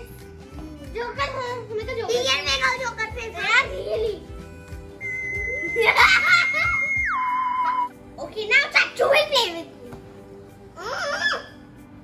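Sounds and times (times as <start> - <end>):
children giggling and babbling: 0.0 - 4.4, 5.5 - 9.9, 10.8 - 11.6
background music: 0.0 - 12.0
steady high electronic beep: 5.0 - 7.9
burst of laughter: 5.8 - 6.9.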